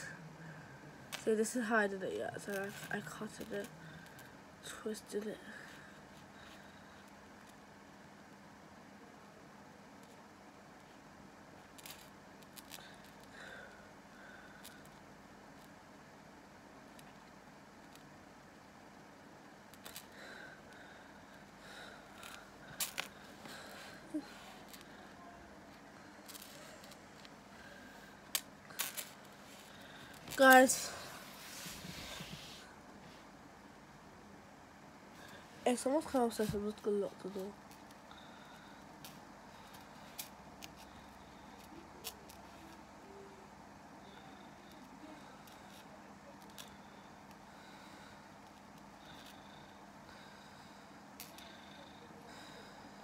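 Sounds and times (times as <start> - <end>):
low steady room hum: 0.0 - 53.0.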